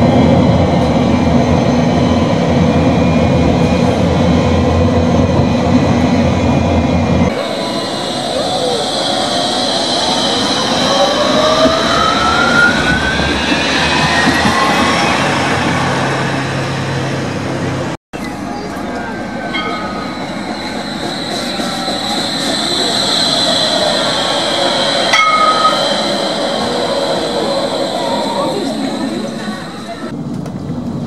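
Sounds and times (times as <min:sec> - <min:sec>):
tram traction whine: 0:00.0 - 0:31.0
tram clicks: 0:18.2 - 0:31.0.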